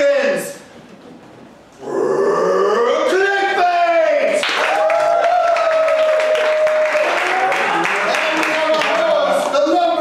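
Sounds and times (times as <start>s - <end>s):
loud drawn-out vocal shout: 1.8s - 4.0s.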